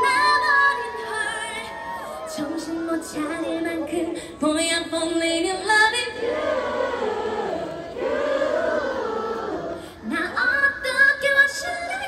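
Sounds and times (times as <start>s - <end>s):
crowd singing along: 3.1s - 12.0s.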